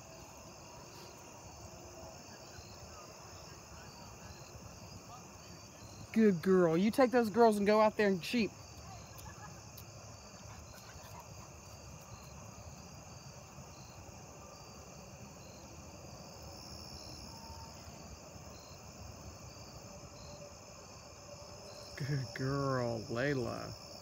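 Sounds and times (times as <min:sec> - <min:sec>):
insects chirping: 0:00.0 - 0:24.0.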